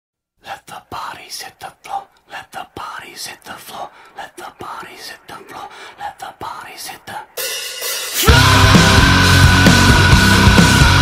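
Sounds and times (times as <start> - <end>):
person whispering: 0.4 - 7.4.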